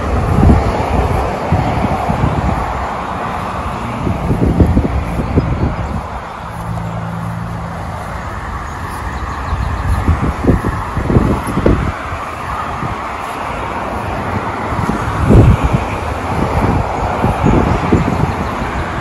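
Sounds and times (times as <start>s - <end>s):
rushing outdoor background noise: 0.0s - 19.0s.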